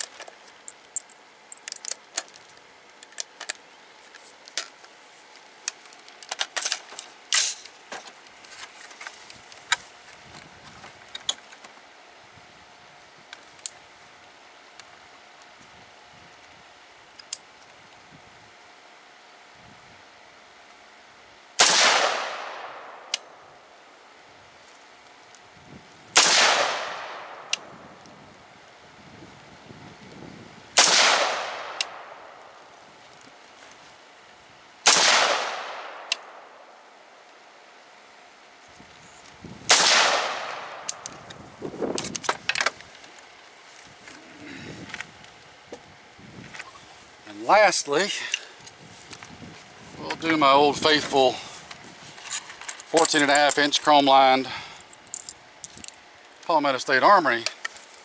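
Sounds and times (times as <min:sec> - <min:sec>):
rifle shots echoing: 0:21.6 - 0:23.1, 0:26.2 - 0:27.5, 0:30.8 - 0:32.4, 0:34.8 - 0:36.5, 0:39.7 - 0:41.0.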